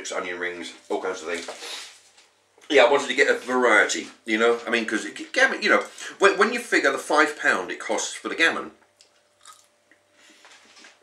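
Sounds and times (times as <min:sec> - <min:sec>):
chewing chips: 0:09.0 - 0:10.0.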